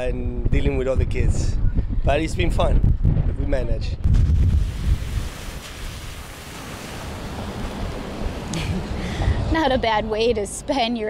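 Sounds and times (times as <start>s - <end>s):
wind buffeting microphone: 0.0s - 11.0s
sharp splash: 4.1s - 8.5s
tyres splashing through water: 4.3s - 9.6s.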